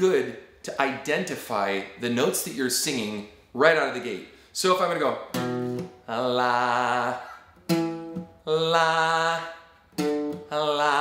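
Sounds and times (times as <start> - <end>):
acoustic guitar note plucked: 5.3 - 11.0
man singing with vibrato: 5.9 - 11.0.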